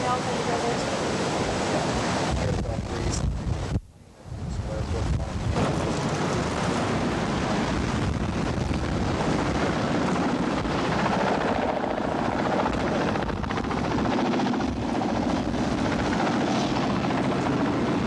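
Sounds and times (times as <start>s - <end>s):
helicopter rotor beat: 0.0s - 3.7s, 4.9s - 18.0s.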